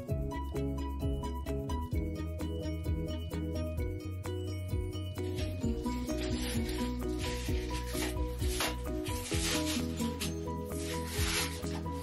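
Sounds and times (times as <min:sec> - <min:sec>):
background music: 0:00.0 - 0:12.0
pad scrubbing a bathtub: 0:05.3 - 0:12.0.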